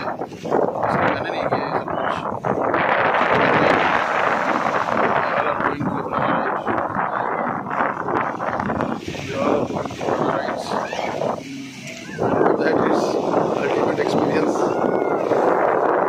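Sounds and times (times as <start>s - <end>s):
wind rushing over microphone: 0.0s - 16.0s
people talking: 0.8s - 2.3s, 4.9s - 15.4s.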